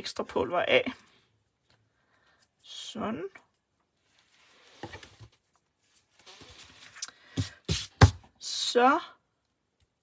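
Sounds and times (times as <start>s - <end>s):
paper rustling and scraping: 4.0s - 8.2s.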